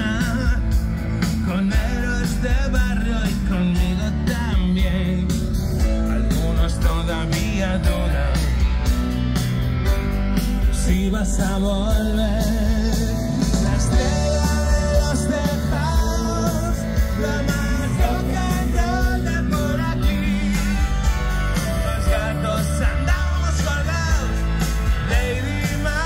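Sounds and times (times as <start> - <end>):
person singing: 0.0 - 8.6, 10.8 - 26.0
live rock band playing: 0.0 - 26.0
crowd singing along: 10.7 - 26.0.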